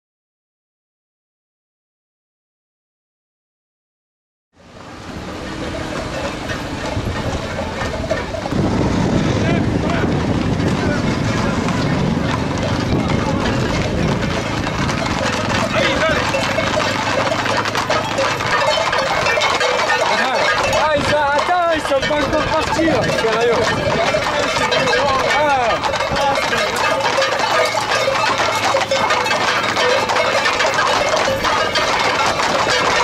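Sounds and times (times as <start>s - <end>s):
horse hooves on paved road: 4.6s - 33.0s
crowd talking and shouting: 5.2s - 33.0s.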